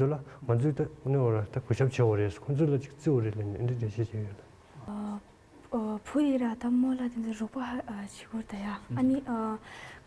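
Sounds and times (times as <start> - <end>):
girl talking: 4.9 - 9.6.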